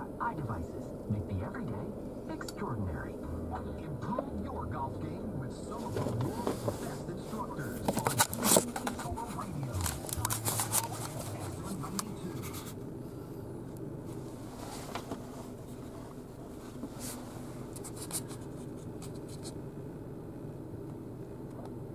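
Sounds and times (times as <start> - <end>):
steady low hum: 0.0 - 21.9
camera rubbing against cloth and paper: 5.8 - 12.8, 14.3 - 19.6.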